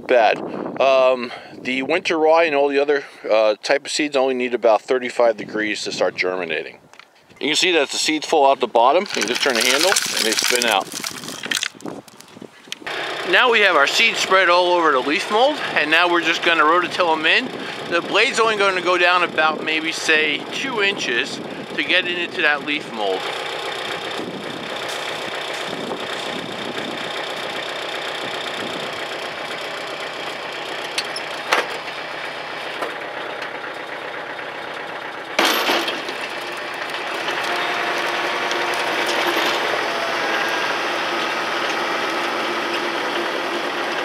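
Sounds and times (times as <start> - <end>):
seed spreader clicking and rattling: 8.9 - 20.4
rototiller engine noise: 8.9 - 44.0
rotary tiller churning soil: 9.0 - 19.5, 22.9 - 35.4, 36.0 - 44.0.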